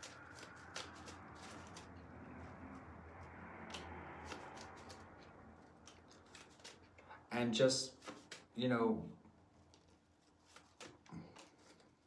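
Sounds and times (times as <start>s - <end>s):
cards being shuffled: 0.0s - 8.6s, 9.6s - 12.0s.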